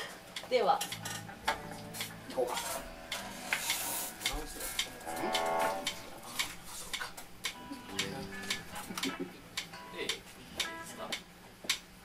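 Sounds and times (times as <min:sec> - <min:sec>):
electric guitar noodling: 0:01.0 - 0:11.0
sharp ticks: 0:02.0 - 0:11.8.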